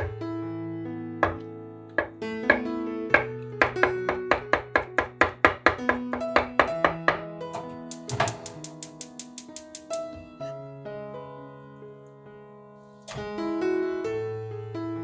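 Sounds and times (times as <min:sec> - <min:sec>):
plucked-string background music: 0:00.0 - 0:10.9.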